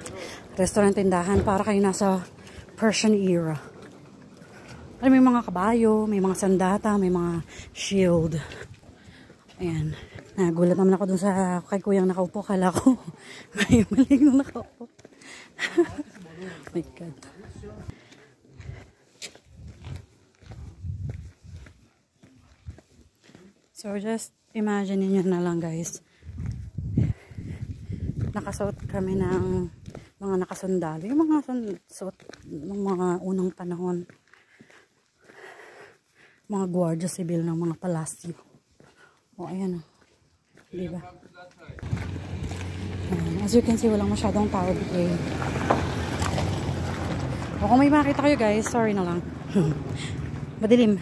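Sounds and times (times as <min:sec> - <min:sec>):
footsteps walking: 0:00.0 - 0:51.0
car engine humming: 0:41.8 - 0:51.0.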